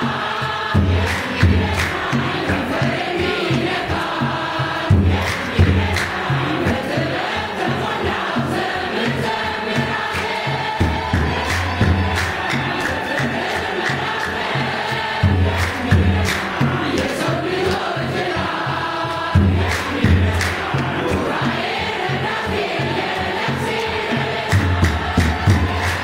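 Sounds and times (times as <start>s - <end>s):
choir and congregation singing hymn: 0.0s - 26.0s
rhythmic hand clapping: 0.0s - 26.0s
drum beating low pulse: 10.8s - 13.4s, 19.4s - 22.2s.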